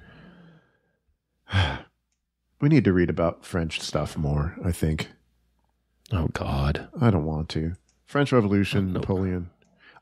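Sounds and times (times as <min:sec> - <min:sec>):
man sighing: 0:01.4 - 0:02.0.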